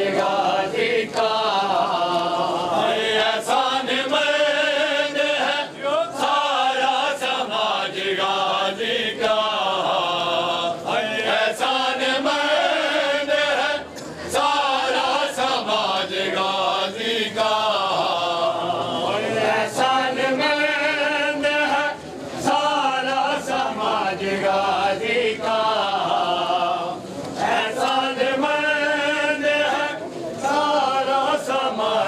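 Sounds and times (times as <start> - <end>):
men chanting mournfully: 0.0 - 32.0.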